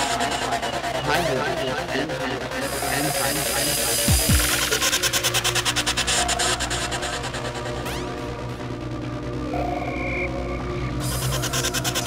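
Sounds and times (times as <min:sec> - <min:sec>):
stuttering pulsing hiss: 0:00.0 - 0:08.5, 0:11.0 - 0:12.0
trance music: 0:00.0 - 0:12.0.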